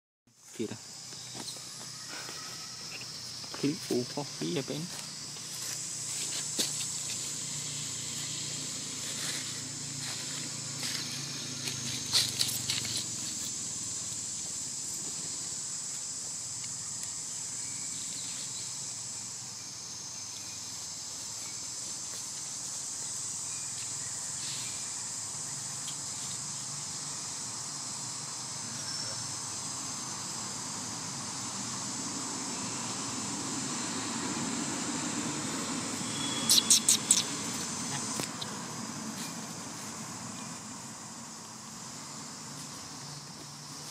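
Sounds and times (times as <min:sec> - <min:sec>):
insects droning: 0:00.3 - 0:43.9.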